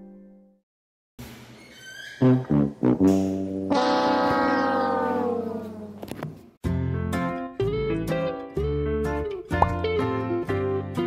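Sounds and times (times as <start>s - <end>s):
sliding trombone-like brass note: 2.2s - 6.2s.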